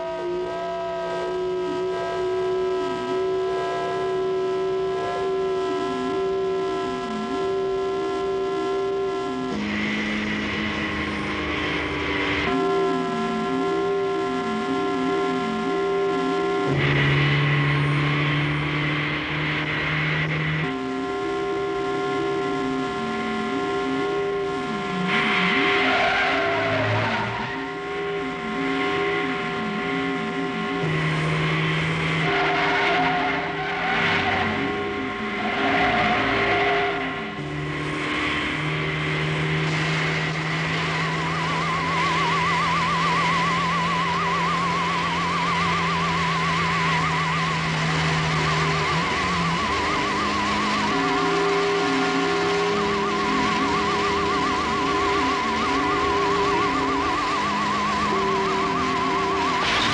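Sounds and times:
vehicle engines at speed: 0:00.0 - 0:59.9.

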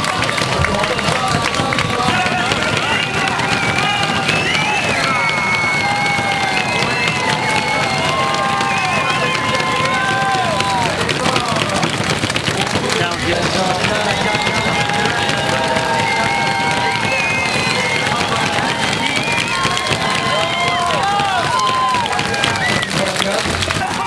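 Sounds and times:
crowd cheering and clapping: 0:00.0 - 0:24.0
long drawn-out shouts: 0:00.0 - 0:24.0.

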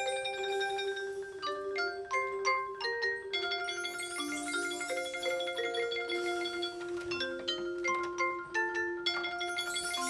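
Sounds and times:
marimba playing soft notes: 0:00.0 - 0:10.0.

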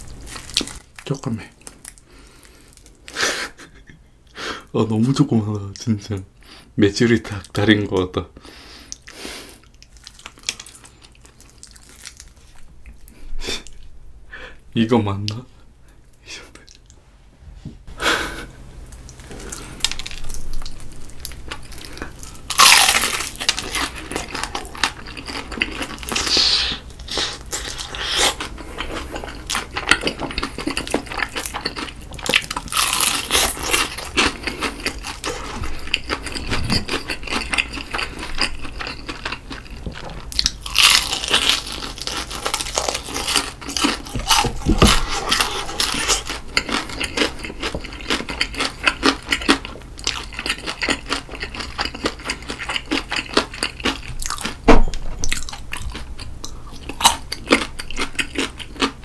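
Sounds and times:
chewing crispy fried chicken: 0:08.8 - 0:13.8, 0:18.9 - 0:54.6, 0:55.3 - 0:59.0.

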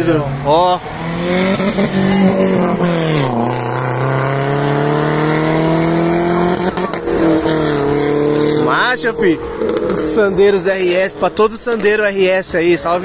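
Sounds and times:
car engine driving past: 0:00.5 - 0:11.9.

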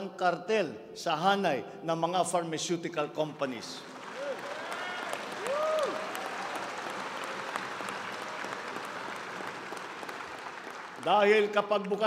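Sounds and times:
audience applauding: 0:03.8 - 0:11.7.

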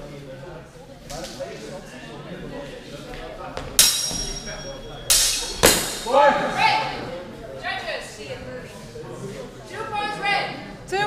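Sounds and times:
steel swords striking: 0:03.8 - 0:06.2.

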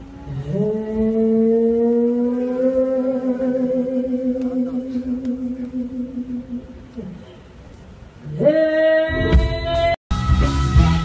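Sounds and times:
woman singing a held note: 0:00.4 - 0:07.5.

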